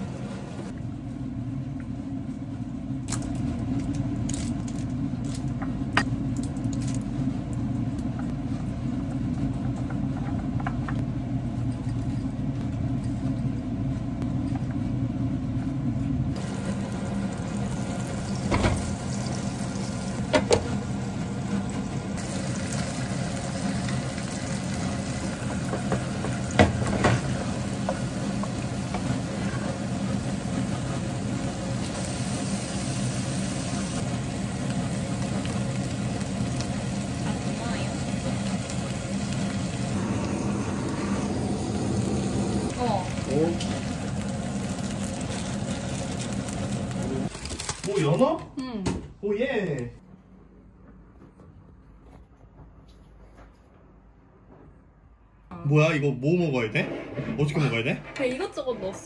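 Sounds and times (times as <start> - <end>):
low kitchen hum: 0.0 - 59.0
cabbage sizzling in a frying pan: 16.4 - 21.1, 22.2 - 48.1.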